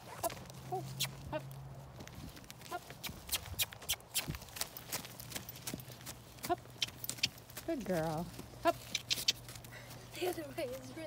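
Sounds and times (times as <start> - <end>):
horse hoofbeats trotting: 0.0 - 11.0.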